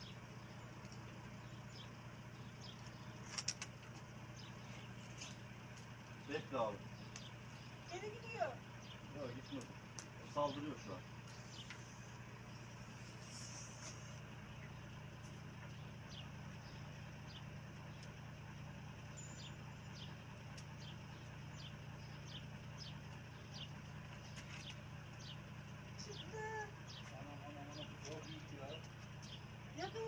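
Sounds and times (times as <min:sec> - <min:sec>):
small birds chirping: 0:00.0 - 0:30.0.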